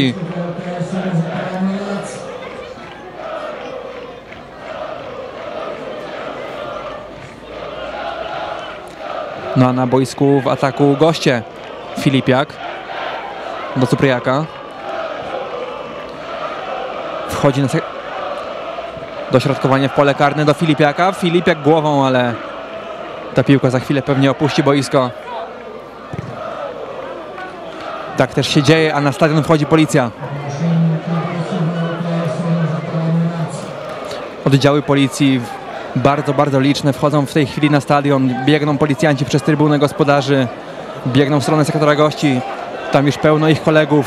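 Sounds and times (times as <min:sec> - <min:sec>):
man commentating: 0:00.0 - 0:02.2, 0:28.2 - 0:33.8, 0:34.4 - 0:44.0
football crowd chanting: 0:00.0 - 0:44.0.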